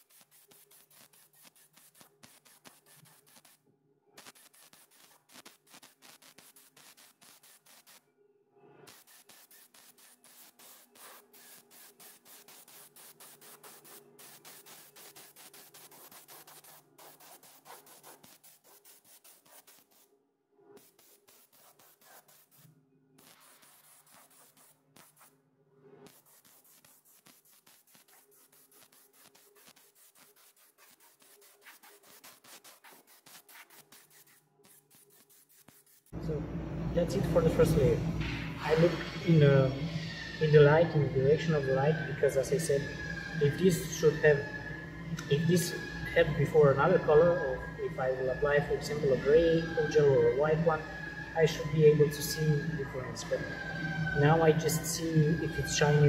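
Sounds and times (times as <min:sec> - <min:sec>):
spray gun hissing: 0:00.0 - 0:03.6, 0:04.2 - 0:08.0, 0:08.9 - 0:20.0, 0:20.8 - 0:25.3, 0:26.1 - 0:36.1
low steady hum: 0:36.2 - 0:39.9.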